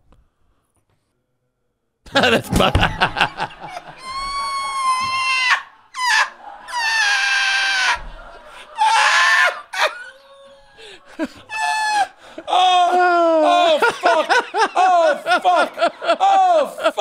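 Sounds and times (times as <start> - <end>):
men laughing uncontrollably: 2.1 - 17.0.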